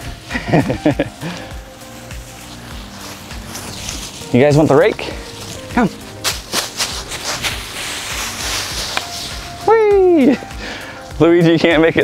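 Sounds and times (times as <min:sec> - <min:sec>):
footsteps through leaves: 0:00.0 - 0:11.2
leaf rake sweeping dry leaves: 0:00.0 - 0:11.2.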